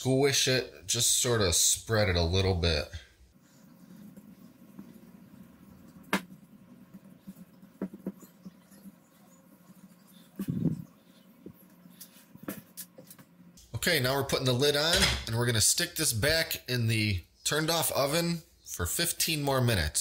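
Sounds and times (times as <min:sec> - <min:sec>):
hands patting dough: 0:06.0 - 0:08.8.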